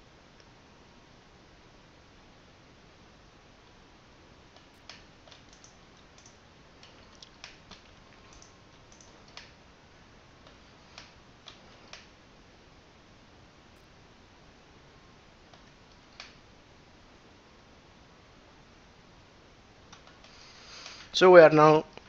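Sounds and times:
low steady hiss: 0:00.0 - 0:22.0
mouse and keyboard clicks: 0:04.6 - 0:09.6.

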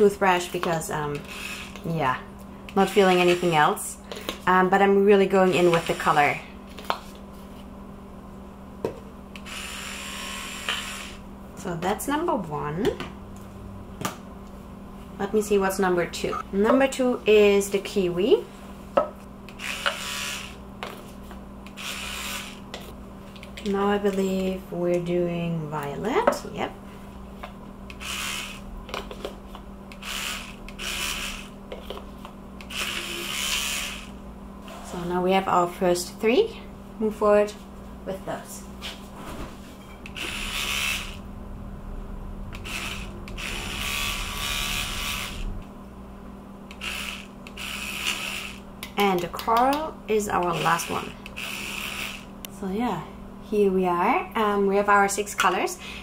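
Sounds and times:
steady low hum: 0:00.0 - 0:56.0
electric toothbrush buzzing: 0:01.2 - 0:01.9, 0:02.8 - 0:03.8, 0:05.4 - 0:06.4, 0:09.4 - 0:11.2, 0:19.5 - 0:20.6, 0:21.7 - 0:22.9, 0:27.9 - 0:28.7, 0:30.0 - 0:31.6, 0:32.6 - 0:34.2, 0:40.1 - 0:41.2, 0:42.6 - 0:45.6, 0:46.7 - 0:48.7, 0:50.4 - 0:52.3.

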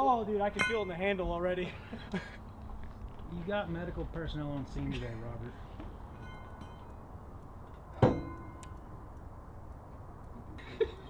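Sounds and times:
metallic ringing: 0:00.4 - 0:01.6, 0:06.1 - 0:09.1
metal weight plate clank: 0:08.0 - 0:08.7.

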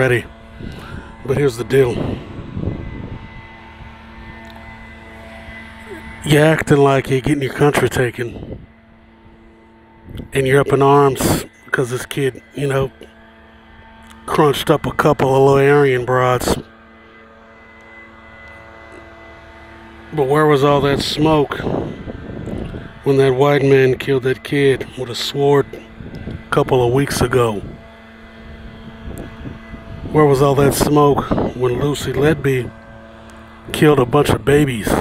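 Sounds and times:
faint held tones: 0:00.0 - 0:35.0
low mechanical drone: 0:00.0 - 0:35.0.

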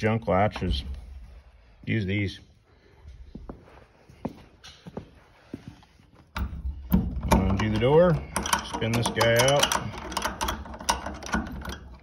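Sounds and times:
metal latch rubbing and rattling: 0:06.3 - 0:12.0.

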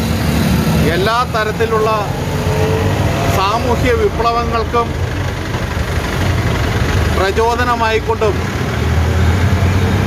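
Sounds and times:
vehicle engine idling: 0:00.0 - 0:09.8.

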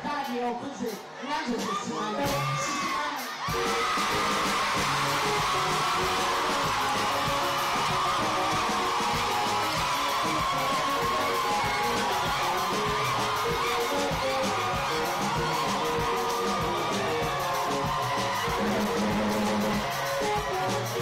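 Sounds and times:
loud pop music over sound system: 0:00.0 - 0:21.0
crowd whooping and yelling: 0:01.1 - 0:21.0.

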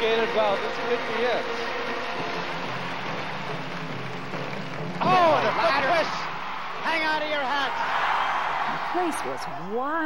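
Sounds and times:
crowd cheering and applauding: 0:00.0 - 0:10.0.

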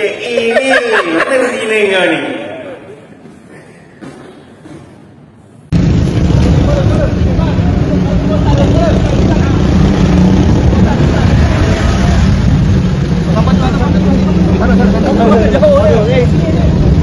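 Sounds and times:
men talking and calling: 0:00.0 - 0:04.1, 0:06.4 - 0:17.0
truck engine droning: 0:05.7 - 0:17.0.

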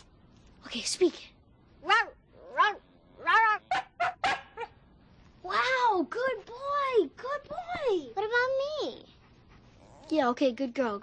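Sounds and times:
dog barking: 0:01.9 - 0:04.8.

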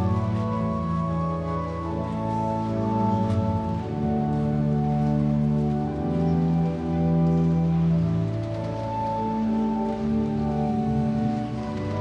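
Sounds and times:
pipe organ chords: 0:00.0 - 0:12.0.

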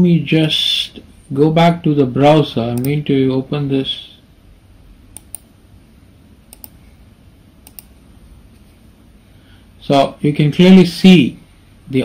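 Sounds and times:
computer mouse clicking: 0:05.1 - 0:05.5, 0:06.5 - 0:06.9, 0:07.6 - 0:08.0.

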